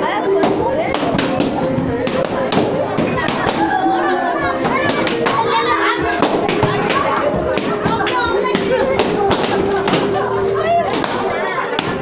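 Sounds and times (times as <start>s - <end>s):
children talking and shouting: 0.0s - 12.0s.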